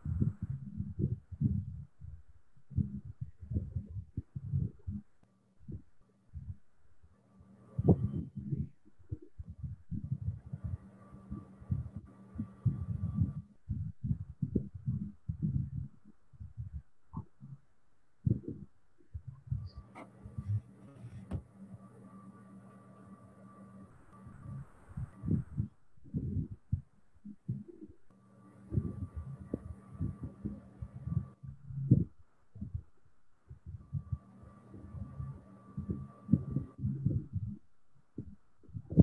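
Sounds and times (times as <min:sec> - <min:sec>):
faint steady hum: 0:00.0 - 0:39.0
stylus thumps on pen tablet: 0:21.2 - 0:21.4.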